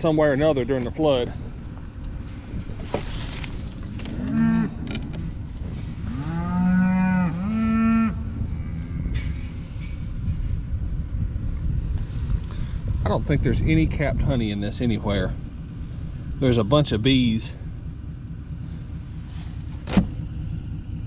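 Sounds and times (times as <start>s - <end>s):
cattle mooing: 3.8s - 9.6s.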